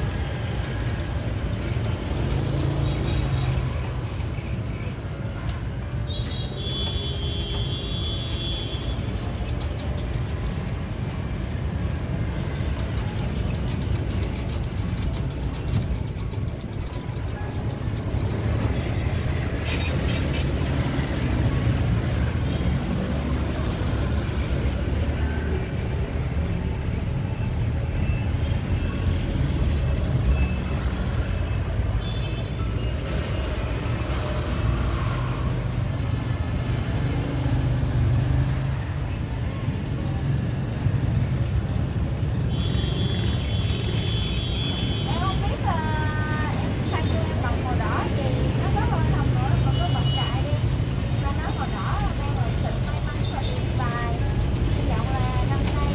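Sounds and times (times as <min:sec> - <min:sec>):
road traffic rumble: 0:00.0 - 0:55.9.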